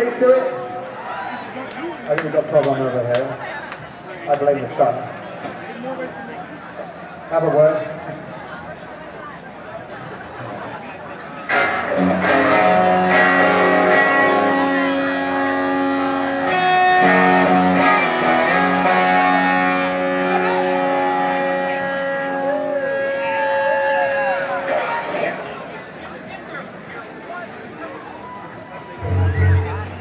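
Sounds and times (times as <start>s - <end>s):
crowd chatter: 0.0s - 30.0s
electric guitar chords: 11.5s - 24.9s, 29.0s - 30.0s
low bass note: 29.0s - 30.0s.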